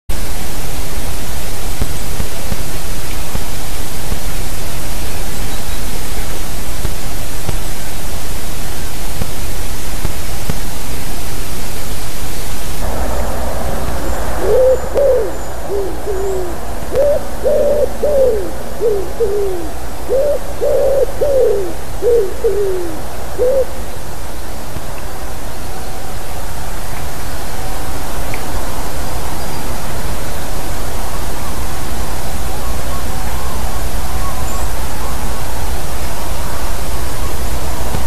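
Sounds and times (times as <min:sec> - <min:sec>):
loud steady hiss: 0:00.1 - 0:38.0
wood pigeon cooing: 0:14.1 - 0:23.8.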